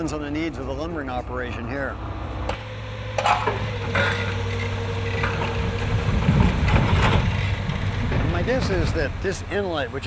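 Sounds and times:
heavy low rumble: 0.0 - 10.0
heavy machine engine running: 1.9 - 10.0.

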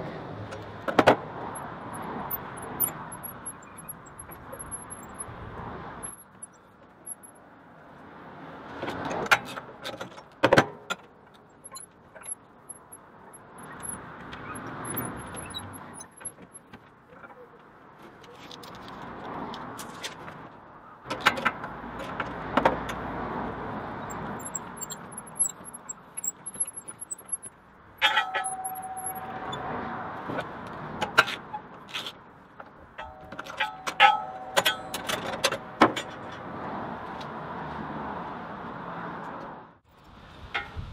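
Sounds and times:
metal clicks and clanks: 0.5 - 5.4, 8.8 - 17.4, 24.0 - 36.5
metallic clanks and clicks: 24.0 - 29.6, 30.4 - 36.4
held ringing tone: 28.0 - 29.6
sharp metal clank: 28.0 - 29.6, 33.0 - 35.4.

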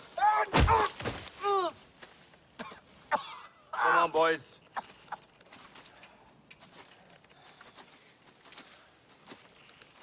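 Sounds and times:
man coughing: 2.6 - 3.7.

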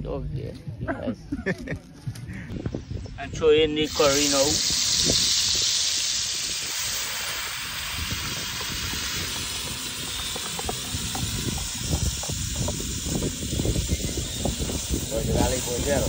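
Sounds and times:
seasoning sizzling in hot oil: 3.9 - 16.0.

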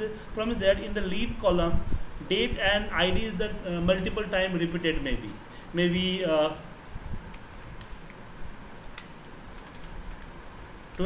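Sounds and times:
computer keyboard typing: 9.0 - 10.3.

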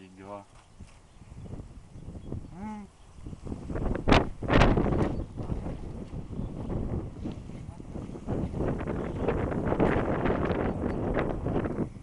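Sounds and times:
wind buffeting microphone: 0.3 - 12.0.

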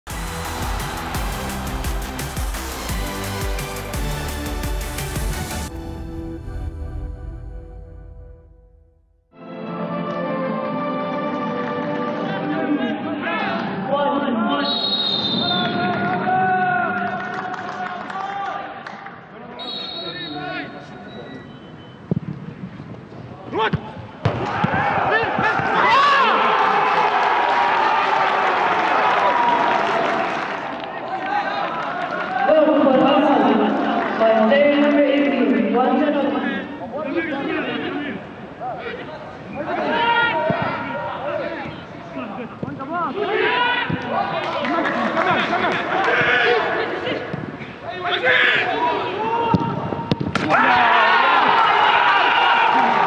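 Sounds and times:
footballers shouting: 23.5 - 30.4, 37.2 - 53.0.

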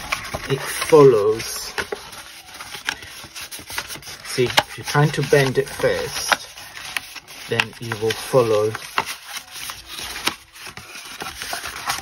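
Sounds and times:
cardstock folding and crinkling: 0.0 - 12.0
cardstock sharp crackles: 0.0 - 12.0.

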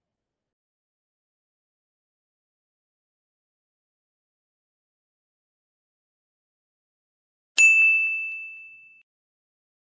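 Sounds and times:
bell-like chime ding: 7.6 - 9.1.

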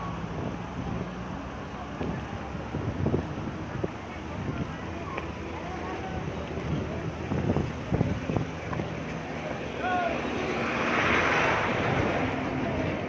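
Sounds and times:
faint distant voices: 0.0 - 13.0
wind buffeting microphone: 0.0 - 13.0.

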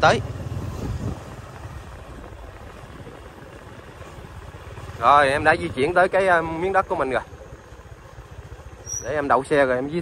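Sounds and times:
motorbike engine rumble: 0.0 - 10.0
road noise: 0.0 - 10.0.

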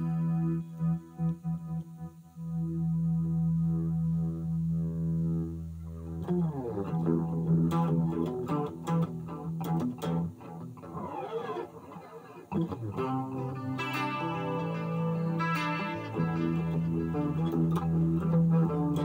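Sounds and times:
electric guitar with effects: 0.0 - 19.0.

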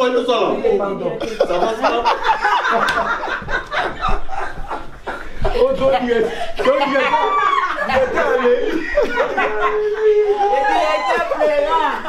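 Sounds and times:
people laughing: 1.2 - 12.0
people talking: 5.4 - 12.0.

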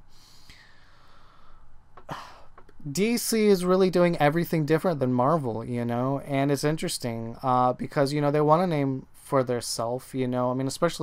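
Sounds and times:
man inhaling sharply: 0.1 - 2.6
man talking: 2.1 - 11.0.

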